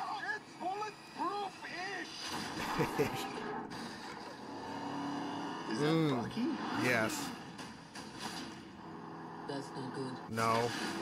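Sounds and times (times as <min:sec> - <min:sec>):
man chuckling: 0:02.6 - 0:03.4.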